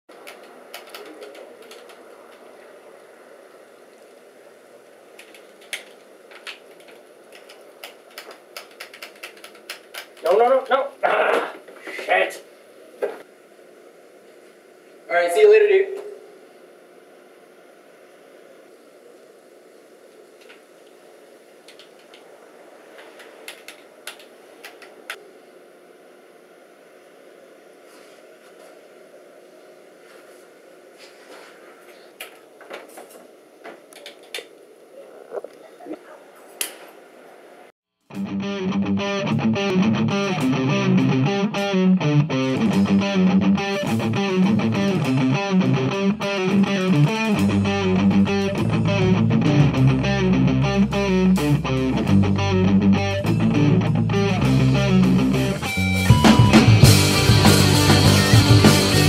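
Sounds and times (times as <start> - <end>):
faint room hiss: 0.1 - 37.8
game controller buttons clicking: 5.2 - 10.2.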